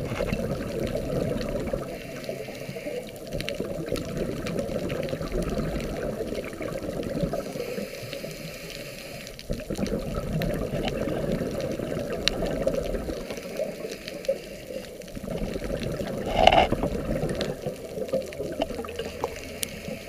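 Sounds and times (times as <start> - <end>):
muffled underwater rushing: 0.0 - 20.0
faint clicks: 0.1 - 20.0.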